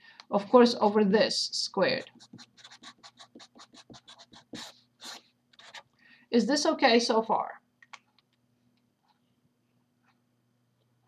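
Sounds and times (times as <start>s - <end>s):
felt-tip marker scratching paper: 2.0s - 5.8s.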